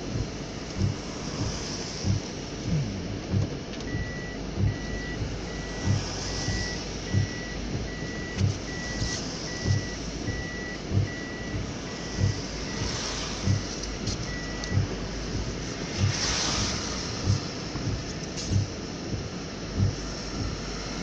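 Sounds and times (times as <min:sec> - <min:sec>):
tyre and rain noise: 0:00.0 - 0:21.0
windscreen wiper thumping: 0:00.0 - 0:21.0
high electronic beep: 0:02.7 - 0:14.9.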